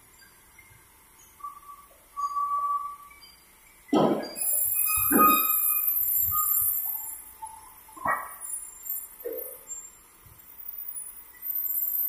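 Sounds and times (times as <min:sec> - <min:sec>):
whistled notes: 0:01.3 - 0:03.4, 0:04.2 - 0:08.7.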